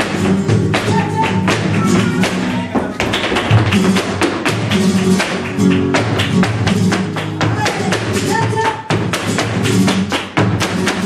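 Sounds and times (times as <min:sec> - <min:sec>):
dancer's footwork taps: 0:00.0 - 0:11.0
flamenco guitar playing: 0:00.0 - 0:11.0
hand-claps: 0:00.0 - 0:11.0.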